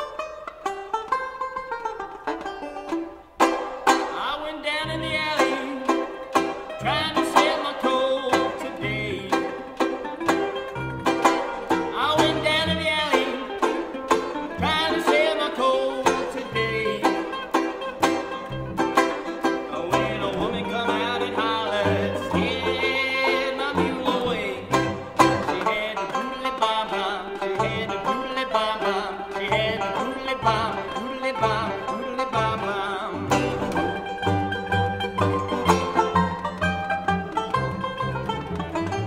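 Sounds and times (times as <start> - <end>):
banjo: 0.0 - 39.0
mandolin: 0.0 - 39.0.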